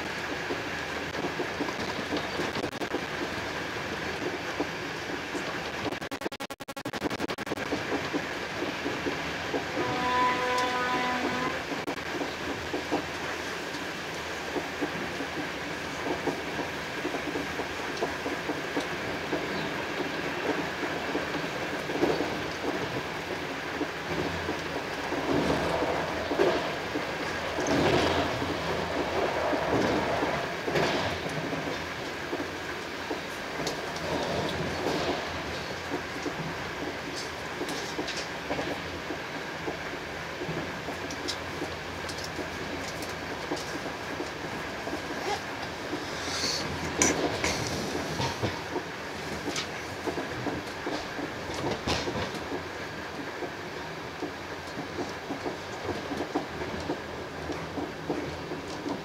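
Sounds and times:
train coach rolling at speed: 0:00.0 - 0:06.1, 0:07.0 - 0:59.0
wheels clicking over rails: 0:07.6 - 0:59.0.

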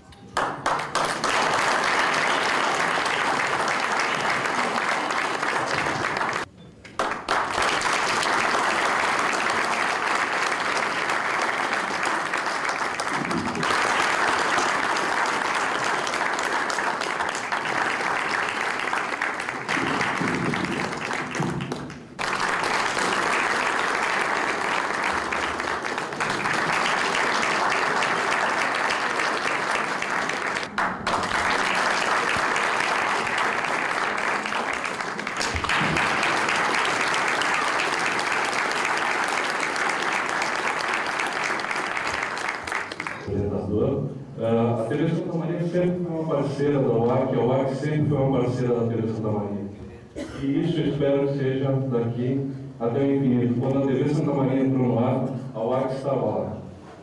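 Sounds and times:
audience applauding: 0:00.3 - 0:43.7.

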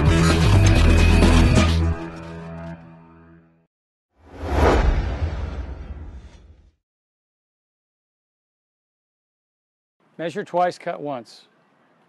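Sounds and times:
whoosh: 0:04.2 - 0:06.8.

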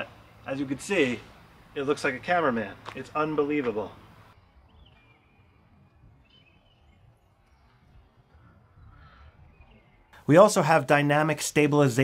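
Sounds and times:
faint bird chirps: 0:04.4 - 0:10.2.

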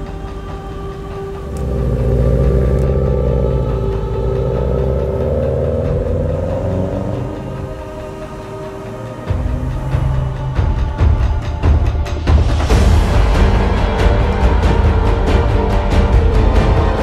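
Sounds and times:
musical drone: 0:00.0 - 0:17.0
car engine accelerating past: 0:01.4 - 0:10.6.

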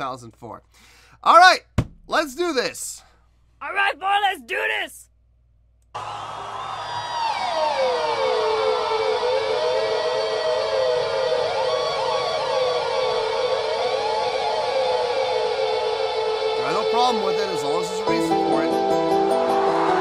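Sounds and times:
electric guitar squeals: 0:06.6 - 0:18.6.

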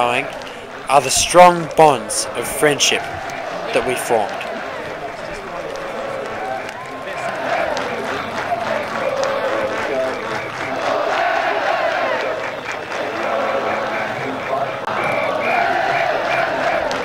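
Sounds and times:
crowd talking: 0:00.0 - 0:17.0
scattered applause: 0:00.0 - 0:17.0.

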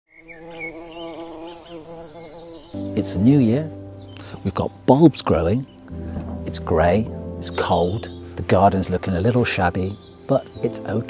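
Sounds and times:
insect buzzing: 0:00.1 - 0:04.4.

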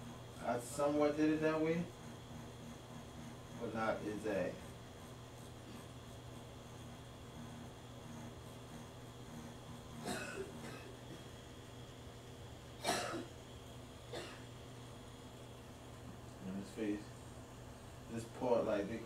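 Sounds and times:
tattoo machine humming: 0:00.0 - 0:17.0.

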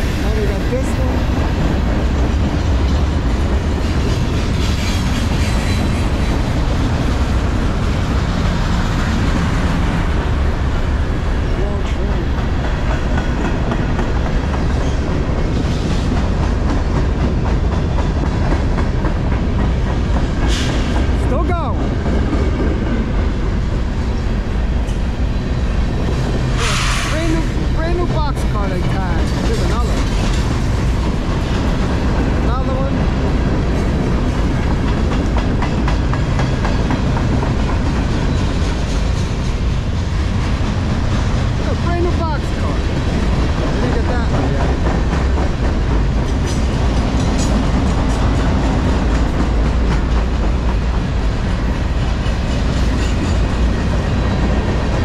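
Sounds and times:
steel wheels rumbling on rails: 0:00.0 - 0:55.0
train wheel squeals: 0:04.3 - 0:06.4
short hisses: 0:26.6 - 0:27.2.

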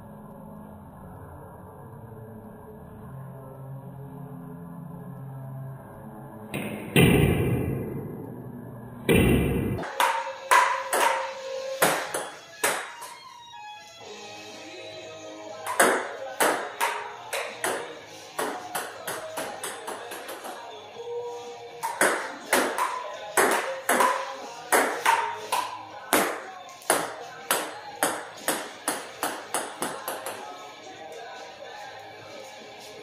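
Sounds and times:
music: 0:00.0 - 0:33.0
ping pong ball hitting paddles: 0:09.1 - 0:13.1, 0:15.6 - 0:20.7, 0:21.8 - 0:30.5.

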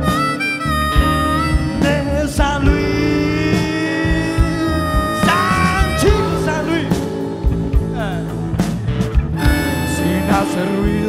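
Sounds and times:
blues-rock band playing: 0:00.0 - 0:11.0
electric guitar: 0:00.0 - 0:11.0.

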